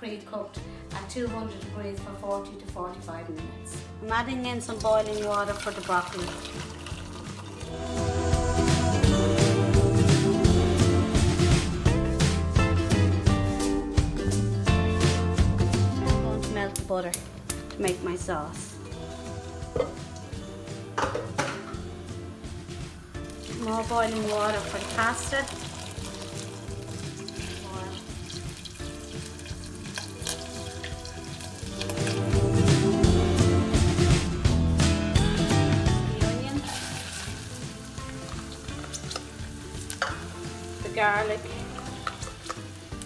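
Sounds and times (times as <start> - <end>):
background music: 0.0 - 43.0
plastic tub knocking saucepan: 21.0 - 21.7
onion sizzling in butter: 23.2 - 32.5, 36.6 - 43.0.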